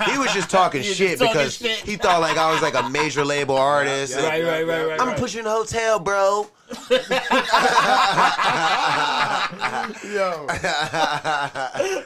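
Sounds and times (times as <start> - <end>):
men laughing: 0.0 - 4.5, 6.7 - 12.0.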